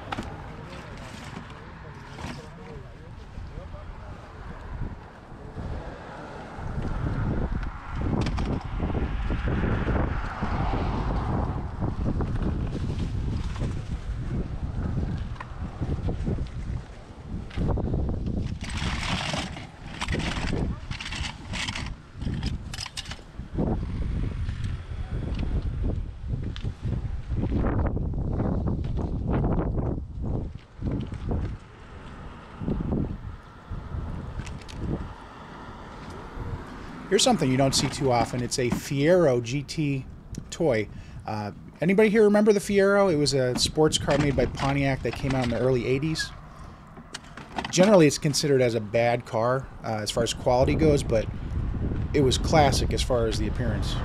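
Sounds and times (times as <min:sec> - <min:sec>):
wind buffeting microphone: 0:03.1 - 0:54.0.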